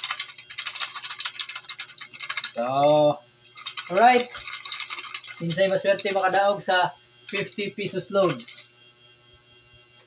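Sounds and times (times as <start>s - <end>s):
paper slips rattling in plastic bottle: 0.0s - 3.0s, 3.6s - 6.4s, 8.2s - 8.6s.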